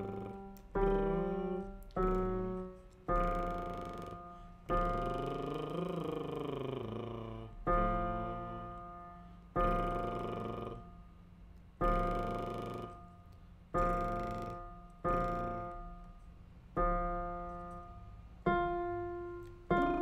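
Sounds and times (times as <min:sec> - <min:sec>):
person singing vocal exercise: 0:00.0 - 0:11.0, 0:11.8 - 0:13.1, 0:13.8 - 0:15.9, 0:19.4 - 0:20.0
piano chords ringing: 0:00.0 - 0:20.0.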